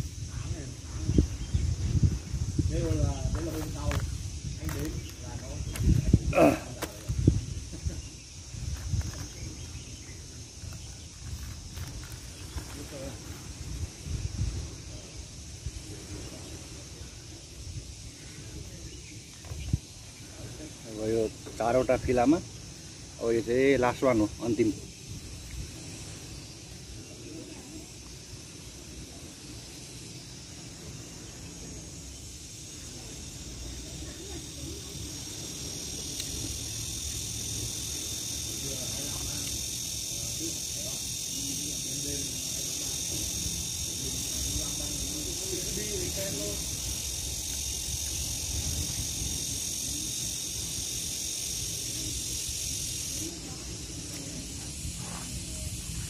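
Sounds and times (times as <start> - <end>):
wind rumble on microphone: 0.0 - 20.6, 45.7 - 50.8
high-pitched insect buzz: 0.0 - 56.0.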